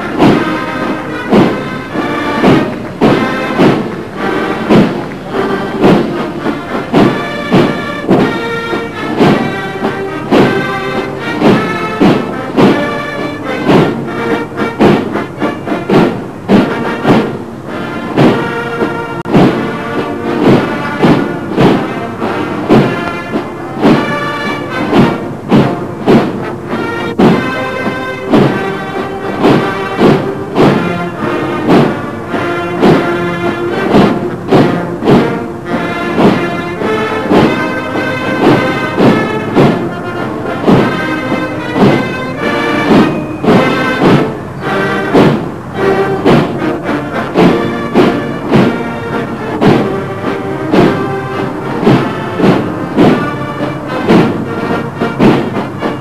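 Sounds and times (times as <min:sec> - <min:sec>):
heavy drum beat: 0:00.0 - 0:56.0
military band playing a march: 0:00.0 - 0:56.0.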